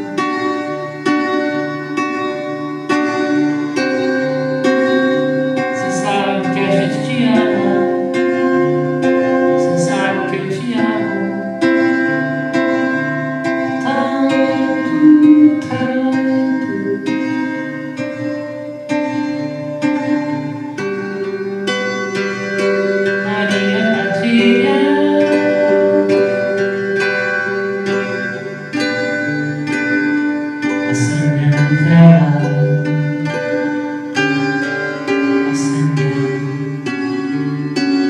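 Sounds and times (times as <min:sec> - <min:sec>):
strummed classical guitar: 0:00.0 - 0:38.0
man singing: 0:30.9 - 0:33.4, 0:35.5 - 0:36.7.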